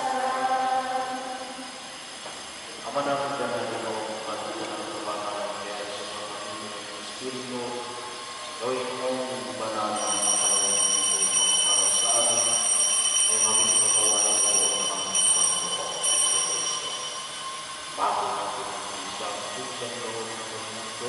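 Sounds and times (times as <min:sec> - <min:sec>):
voices singing in a church: 0:00.0 - 0:02.0
high-pitched whine: 0:00.0 - 0:21.0.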